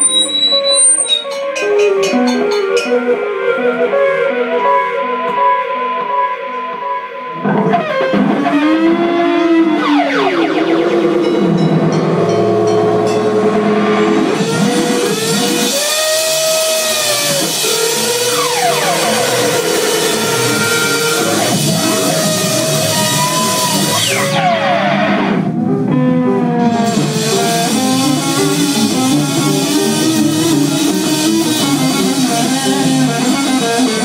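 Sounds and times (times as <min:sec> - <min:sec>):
electric guitar playing: 0:01.2 - 0:34.0.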